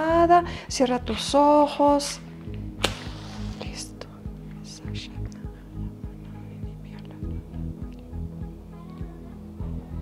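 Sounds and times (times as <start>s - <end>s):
slow low pulsing music: 0.0s - 10.0s.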